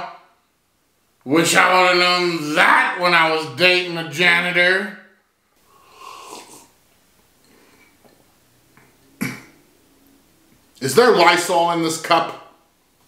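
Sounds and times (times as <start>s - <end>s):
man breathing: 5.6s - 6.7s.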